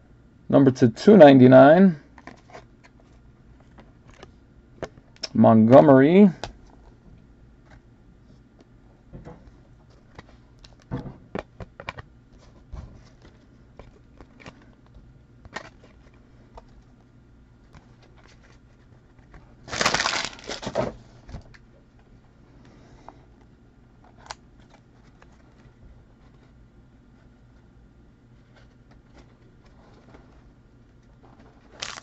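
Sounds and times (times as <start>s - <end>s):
card-pack wrapper crinkling: 19.6s - 20.8s, 31.3s - 32.0s.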